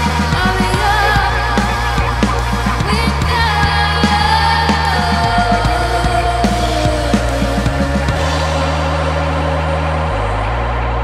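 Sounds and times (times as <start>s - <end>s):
low synth bass notes: 0.0s - 11.0s.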